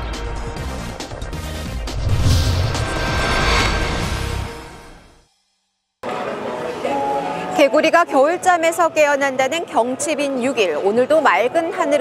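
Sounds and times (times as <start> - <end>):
deep rumble: 1.6 - 5.2
whoosh sound effect: 1.7 - 5.2.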